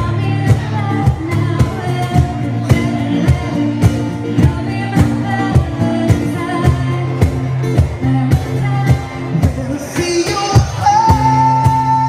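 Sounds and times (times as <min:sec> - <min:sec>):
guitar: 0:00.0 - 0:12.0
person singing: 0:00.0 - 0:12.0.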